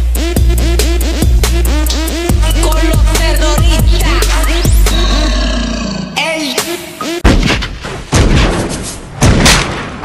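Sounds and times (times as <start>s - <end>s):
dance music: 0.0s - 5.3s, 6.2s - 7.2s.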